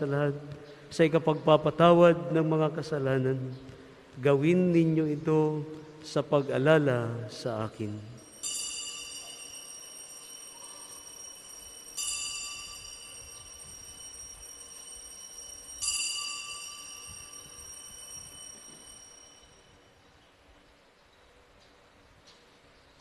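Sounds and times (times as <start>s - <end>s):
altar bell ringing: 8.2s - 20.0s.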